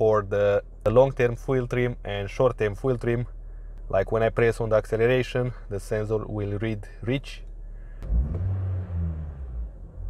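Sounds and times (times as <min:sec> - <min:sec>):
car engine revving from idle: 0:07.7 - 0:10.0.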